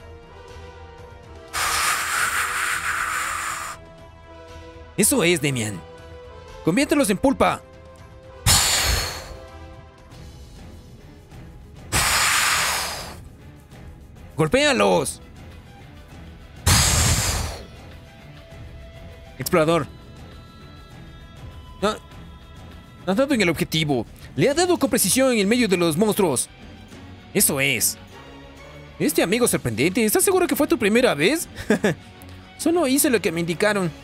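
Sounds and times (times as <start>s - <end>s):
faint background music: 0.0s - 34.0s.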